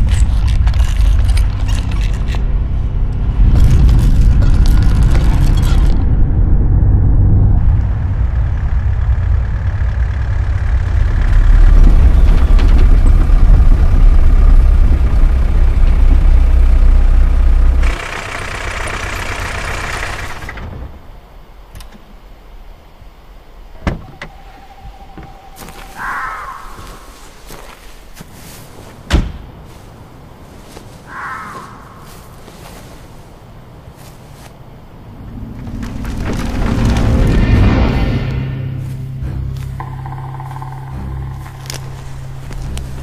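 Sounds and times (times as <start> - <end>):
deep soundtrack rumble: 0.0 - 21.7, 34.6 - 43.0.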